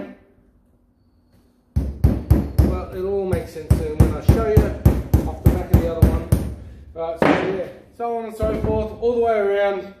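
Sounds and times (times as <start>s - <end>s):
hammer knock: 1.8s - 6.6s, 7.2s - 7.6s.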